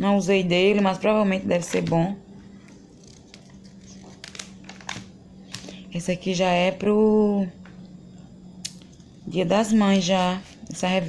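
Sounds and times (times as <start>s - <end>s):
glossy paper pages turning: 2.7s - 5.7s
paper rustling and crinkling: 2.8s - 5.7s.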